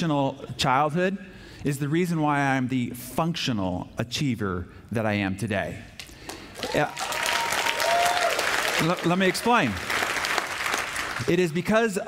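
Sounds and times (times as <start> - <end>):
audience clapping: 6.2 - 11.5.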